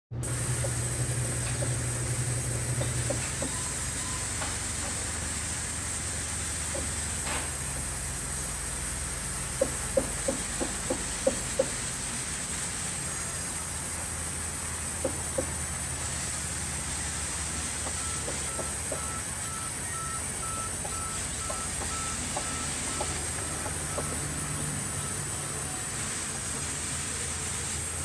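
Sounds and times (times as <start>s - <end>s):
band saw cutting log: 0.2s - 12.1s, 14.6s - 19.2s.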